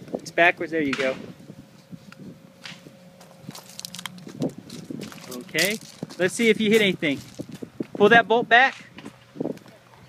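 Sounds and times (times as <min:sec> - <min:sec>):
magazine scuffing rustle: 0:02.6 - 0:07.7.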